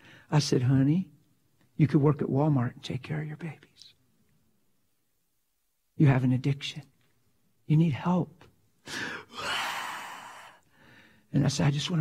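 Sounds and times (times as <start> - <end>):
long breathy sigh: 8.8 - 11.3.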